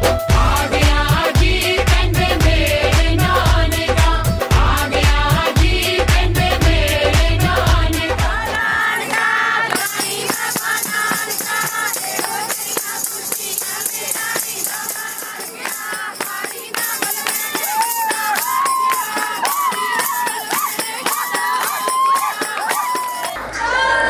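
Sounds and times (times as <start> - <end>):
women singing together: 0.3 - 24.0
hands clapping: 8.5 - 23.7
tambourine jingling: 9.7 - 23.4.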